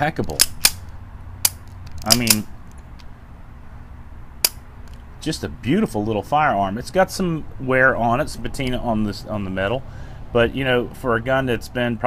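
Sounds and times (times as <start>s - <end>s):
low steady hum: 0.0s - 12.0s
pistol action metallic click: 0.2s - 3.1s, 4.4s - 5.0s.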